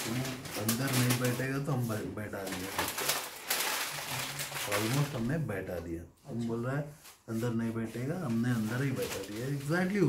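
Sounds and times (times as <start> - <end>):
clicks and rustles of handling: 8.3 - 9.8.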